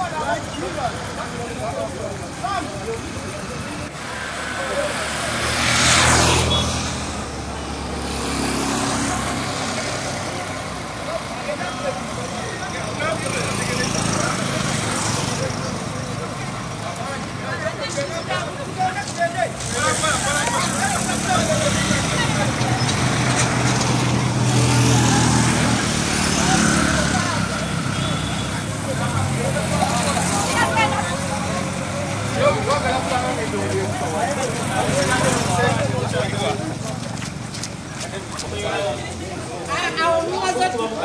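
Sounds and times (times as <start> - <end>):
crowd chatter and calls: 0.0 - 41.0
motorcycles passing: 0.0 - 41.0.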